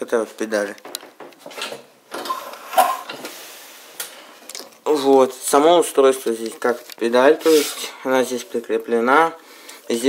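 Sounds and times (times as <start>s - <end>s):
soft hiss: 2.3s - 10.0s.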